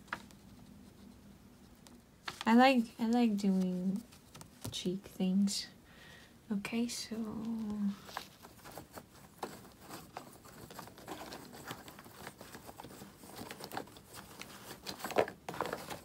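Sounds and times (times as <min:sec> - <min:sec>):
crayons clicking and rattling: 0:07.8 - 0:16.0.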